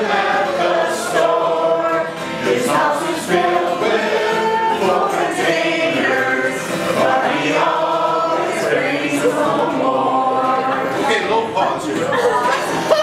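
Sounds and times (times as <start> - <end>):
group of voices singing: 0.0 - 13.0
strummed acoustic guitar: 0.0 - 13.0.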